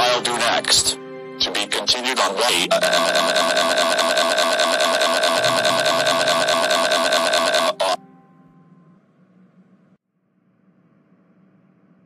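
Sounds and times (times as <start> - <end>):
computer voice holding a vowel: 0.0 - 6.4, 7.6 - 8.0.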